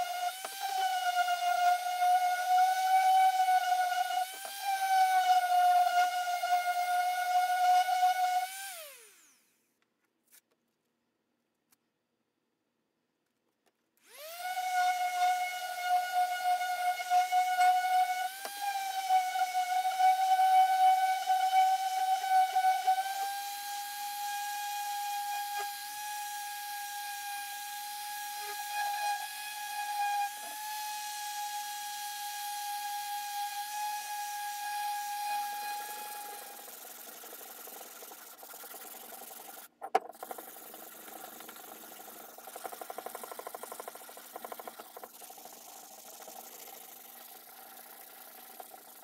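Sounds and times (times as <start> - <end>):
orbital sander whining: 0.0 - 9.5, 14.0 - 49.0.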